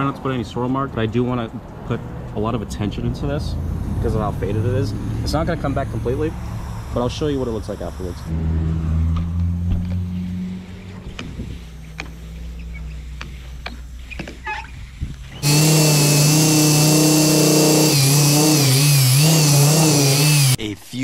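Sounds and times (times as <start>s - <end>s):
electric car polisher running: 15.4s - 20.6s.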